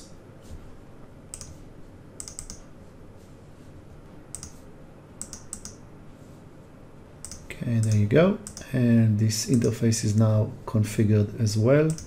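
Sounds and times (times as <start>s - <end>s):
computer mouse and keyboard clicks: 1.3s - 1.6s, 2.2s - 2.7s, 4.3s - 4.6s, 5.2s - 5.8s, 7.2s - 8.7s, 9.5s - 9.8s.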